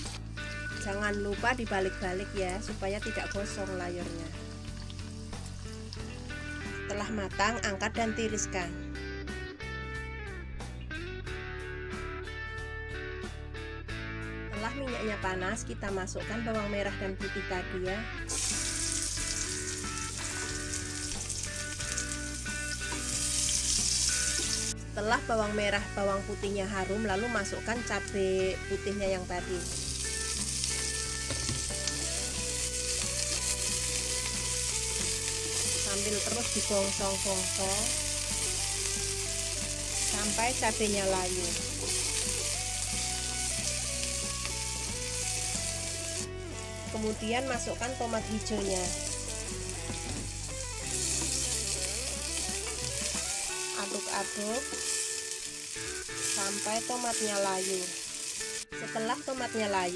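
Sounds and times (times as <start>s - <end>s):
shallots sizzling in hot oil: 0.0s - 8.5s, 16.2s - 59.9s
soft background music: 0.0s - 59.9s.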